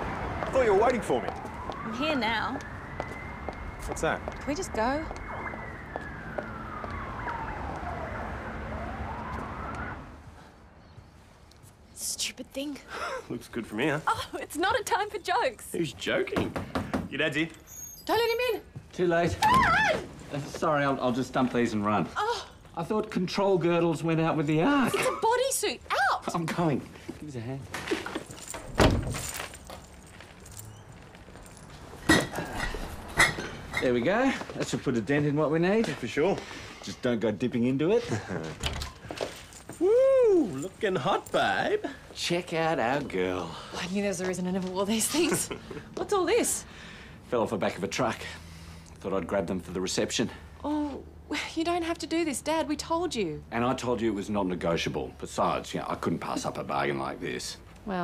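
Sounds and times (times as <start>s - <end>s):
emergency vehicle siren wailing: 0.0s - 10.4s
low traffic hum: 0.0s - 58.0s.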